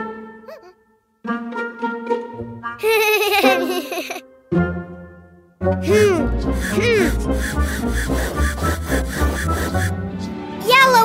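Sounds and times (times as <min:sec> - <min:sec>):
bouncy children's music: 0:00.0 - 0:11.0
hand air pump strokes: 0:05.8 - 0:10.0.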